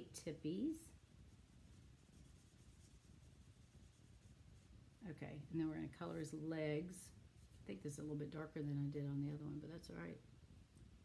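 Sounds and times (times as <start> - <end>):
marker tip stroking on card: 1.7 - 4.7.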